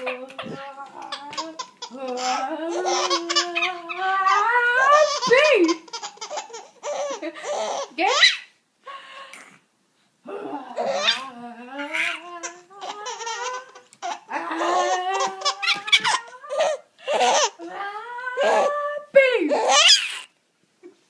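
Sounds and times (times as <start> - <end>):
baby vocal sounds gliding in pitch: 0.0 - 5.8, 10.3 - 20.3
baby laughing: 0.0 - 8.5, 10.8 - 17.7, 19.5 - 20.3.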